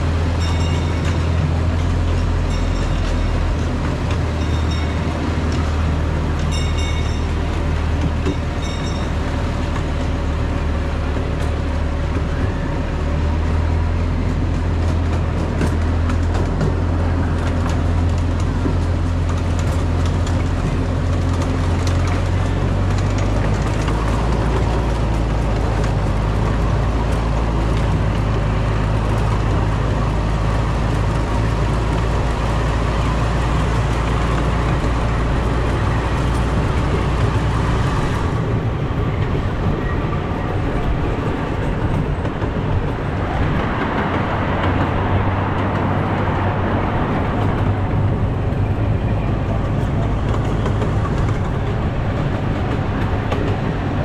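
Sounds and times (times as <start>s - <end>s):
miniature train running on track: 0.0s - 54.0s
wheel and rail noise: 0.0s - 54.0s.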